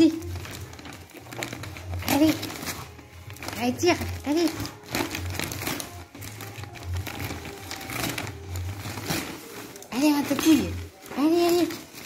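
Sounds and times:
wrapping paper crinkling: 0.0s - 12.0s.

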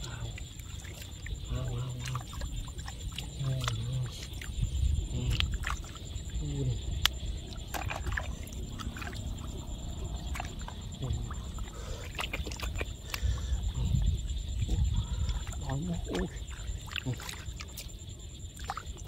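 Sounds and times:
shallow water sloshing: 0.0s - 19.0s
low rumble: 4.0s - 11.8s, 12.9s - 16.8s.

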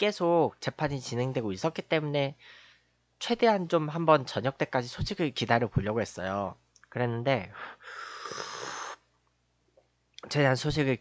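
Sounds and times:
person slurping a drink: 8.0s - 9.0s.

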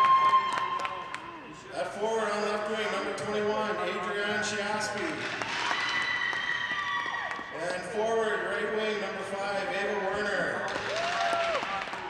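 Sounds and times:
spectators clapping: 0.0s - 1.5s, 4.9s - 7.8s, 10.6s - 12.0s.

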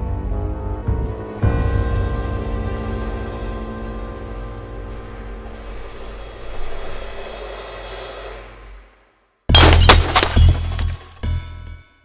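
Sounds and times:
tense film score music: 0.0s - 9.4s
glass shattering: 9.5s - 11.9s.

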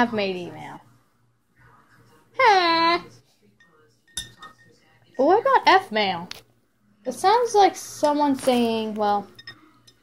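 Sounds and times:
spoon clinking against cup: 3.6s - 4.9s, 9.3s - 10.0s.

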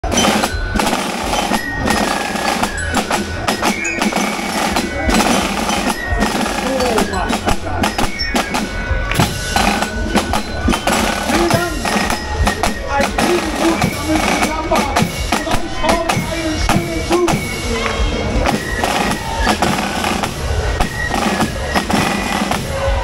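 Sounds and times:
crowd shouting: 0.0s - 23.0s
fife and drum march: 0.0s - 23.0s
marching snare drums: 0.0s - 23.0s.

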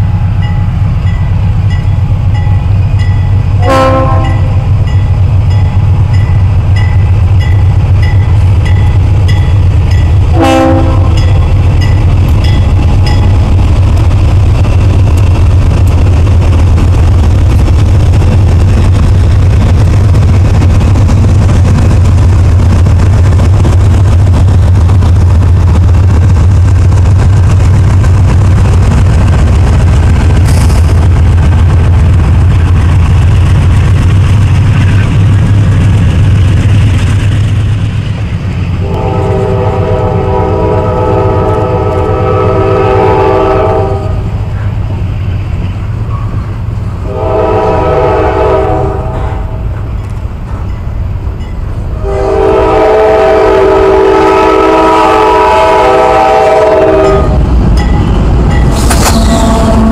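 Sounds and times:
freight train rumbling past: 0.0s - 59.9s
locomotive air horn chord: 3.6s - 4.6s, 10.3s - 11.2s, 38.8s - 44.3s, 47.0s - 49.6s, 52.0s - 57.4s, 58.9s - 59.9s.

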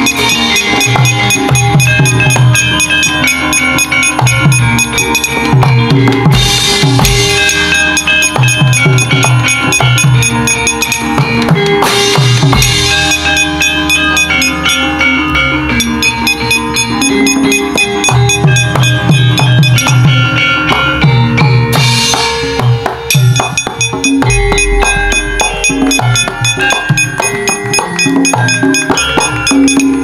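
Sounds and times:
bronze keyed instruments ringing: 0.0s - 22.5s, 23.1s - 30.0s
driving drum strokes: 0.0s - 30.0s.

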